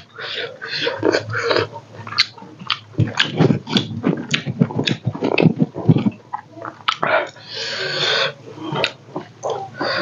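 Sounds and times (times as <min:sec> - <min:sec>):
chewing and lip smacking: 0:00.0 - 0:07.5, 0:08.6 - 0:10.0.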